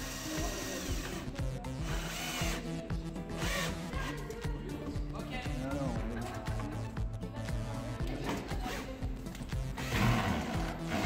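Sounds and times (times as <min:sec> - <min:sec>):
background music with beat: 0:00.0 - 0:11.0
cordless drill whining into wood: 0:01.8 - 0:02.7.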